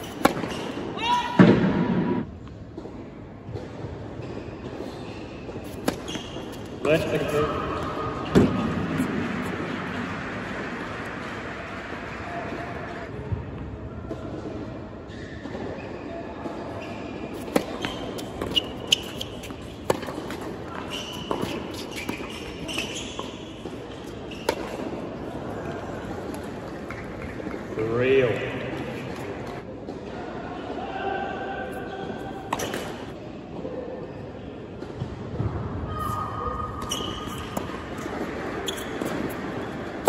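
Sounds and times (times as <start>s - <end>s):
tennis racket striking ball: 0.0s - 0.8s, 5.6s - 7.4s, 17.3s - 22.3s
shoe squeaks: 0.0s - 1.2s, 4.2s - 8.0s, 16.8s - 24.9s, 35.9s - 39.7s
tennis ball bouncing: 0.0s - 2.2s, 5.4s - 11.4s, 17.3s - 25.0s, 36.8s - 40.0s
crowd noise: 4.5s - 40.0s.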